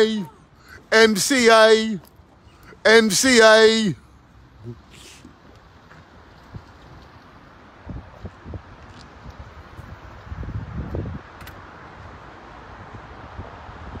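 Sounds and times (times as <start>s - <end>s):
outdoor background hiss: 0.0s - 14.0s
wind buffeting microphone: 6.1s - 14.0s.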